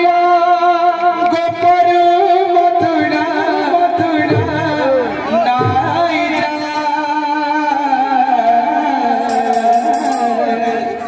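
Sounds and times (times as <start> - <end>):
devotional music: 0.0 - 11.0
man singing through a microphone: 0.0 - 11.0.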